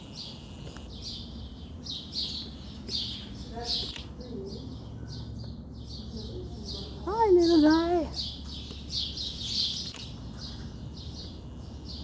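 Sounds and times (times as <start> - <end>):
bird chirping: 0.0 - 12.0
steady low hum: 0.0 - 12.0.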